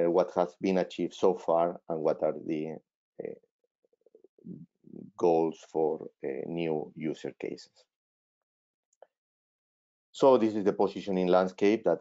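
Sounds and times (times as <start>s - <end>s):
man saying uh: 0.0s - 3.4s, 4.5s - 7.6s
soft low vocal sounds: 0.0s - 3.4s, 4.4s - 7.6s.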